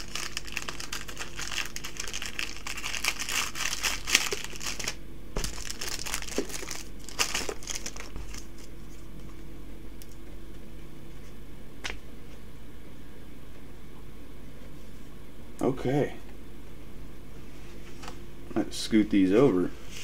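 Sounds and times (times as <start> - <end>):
plastic sleeve crinkling: 0.0 - 9.4.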